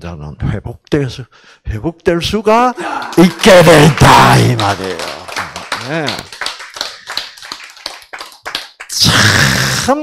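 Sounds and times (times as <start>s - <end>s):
person speaking: 1.9s - 5.2s
audience clapping: 2.5s - 9.9s.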